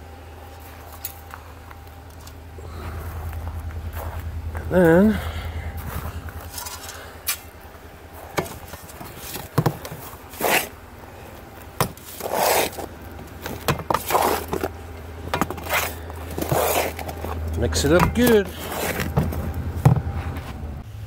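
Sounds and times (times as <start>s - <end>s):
shovel digging and scraping sand: 5.9s - 7.6s, 8.3s - 10.8s, 11.8s - 14.7s, 15.4s - 19.2s.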